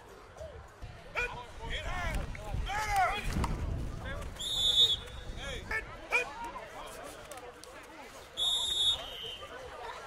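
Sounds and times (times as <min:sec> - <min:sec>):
faint background chatter: 0:00.0 - 0:10.0.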